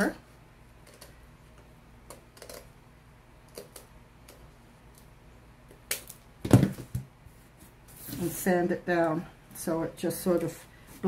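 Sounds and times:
heavy thump on table: 6.4 - 7.1.

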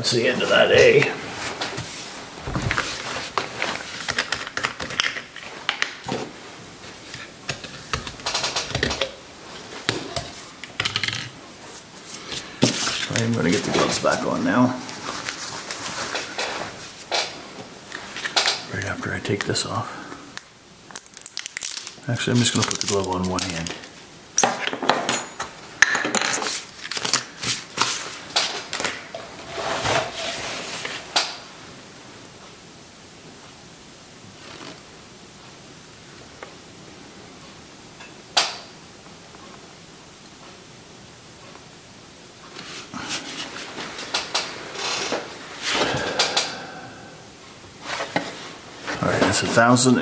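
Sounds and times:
rustling: 0.3 - 4.6, 11.5 - 19.6
plastic containers knocking and clicking: 7.5 - 9.2.

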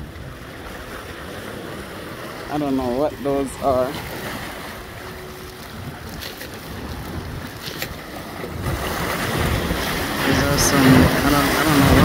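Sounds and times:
waves splashing between boulders: 0.0 - 12.0
wind buffeting microphone: 0.0 - 12.0.

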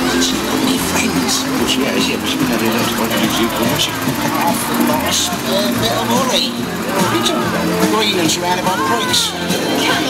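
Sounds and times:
people's voices: 0.0 - 10.0
tractor diesel engine running: 0.0 - 10.0.

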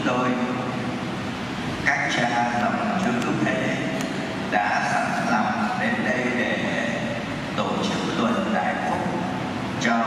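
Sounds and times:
man speaking over public address: 0.0 - 1.0, 1.8 - 10.0.

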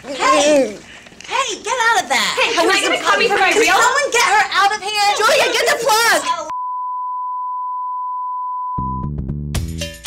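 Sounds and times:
steady reference test tone: 6.5 - 9.2
upbeat music: 8.8 - 10.0.

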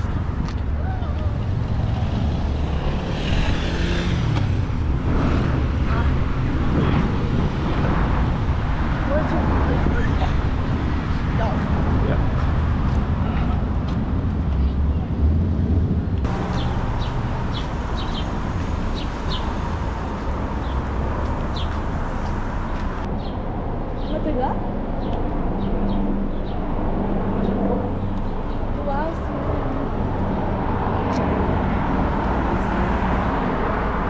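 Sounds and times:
traffic noise of engines and tyres: 0.0 - 34.0.

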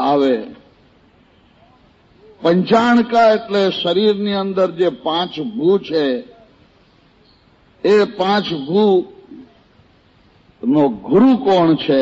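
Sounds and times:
man delivering a sermon: 0.0 - 0.6, 2.4 - 6.5, 7.8 - 9.7, 10.6 - 12.0
faint hiss: 0.0 - 12.0.

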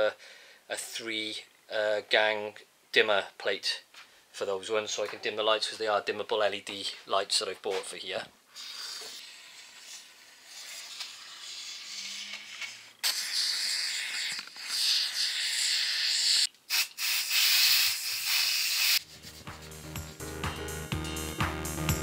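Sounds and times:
foam gun hissing: 8.6 - 19.1
music: 19.0 - 22.0.

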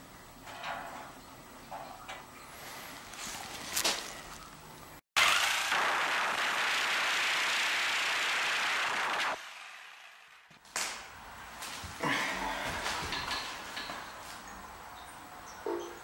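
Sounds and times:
power tool cutting steel pipe: 5.2 - 10.3.

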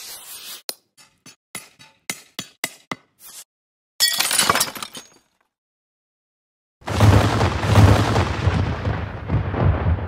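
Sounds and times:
glass shattering crash: 4.0 - 5.3.

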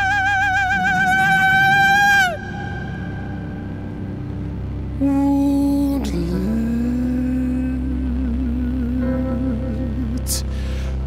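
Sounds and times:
operatic voice singing: 0.0 - 10.7
low drone: 0.0 - 11.0.

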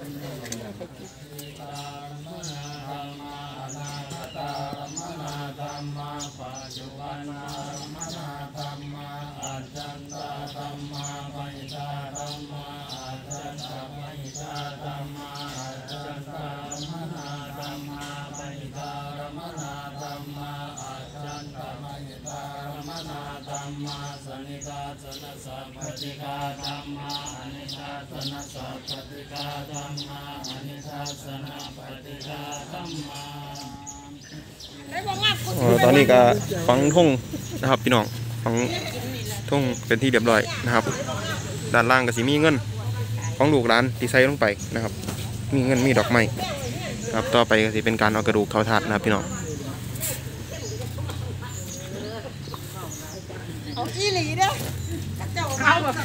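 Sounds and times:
people talking: 0.0 - 1.7, 34.8 - 56.0
men chanting in unison: 0.0 - 56.0.

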